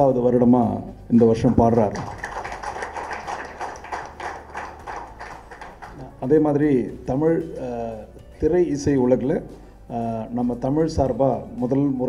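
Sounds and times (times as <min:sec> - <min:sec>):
audience applauding: 0:02.0 - 0:06.2.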